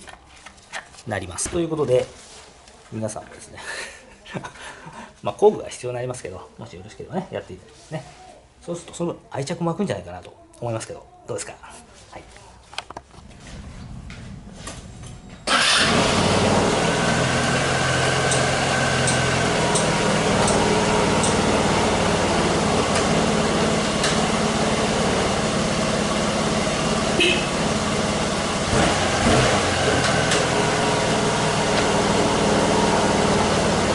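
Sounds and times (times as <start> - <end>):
scooter engine idling: 13.4 - 33.9.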